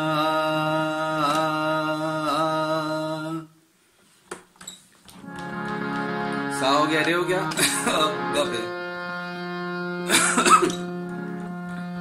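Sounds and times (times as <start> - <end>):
harmonium drone: 5.2 - 12.0
person clearing throat: 10.1 - 10.9.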